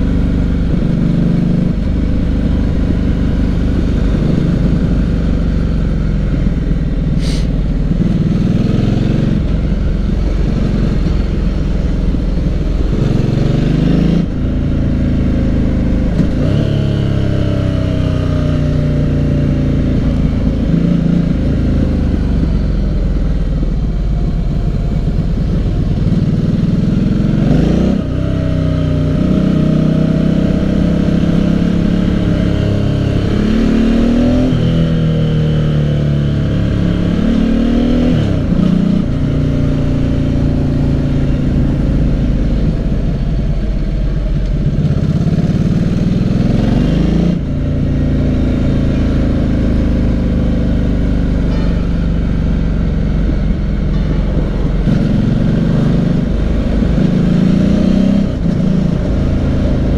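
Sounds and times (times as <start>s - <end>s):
motorcycle engine revving: 0.0s - 59.9s.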